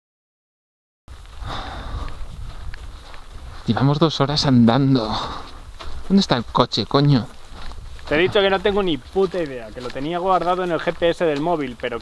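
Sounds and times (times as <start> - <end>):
low rumble of microphone handling: 1.1 - 6.2
person sniffing: 1.4 - 2.1.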